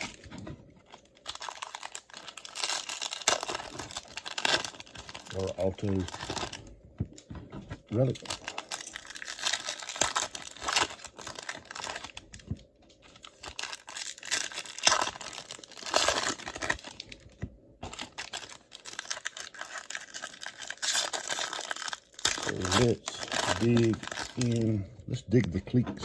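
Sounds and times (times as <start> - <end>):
foil wrapper crinkling and tearing: 0.0 - 6.6, 7.9 - 12.4, 13.0 - 24.8.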